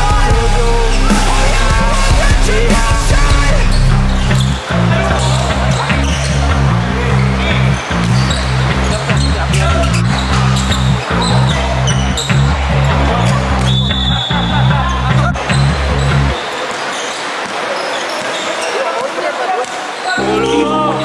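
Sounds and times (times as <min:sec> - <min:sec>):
music with repeating bass line: 0:00.0 - 0:16.4
basketball game sounds: 0:00.0 - 0:21.0.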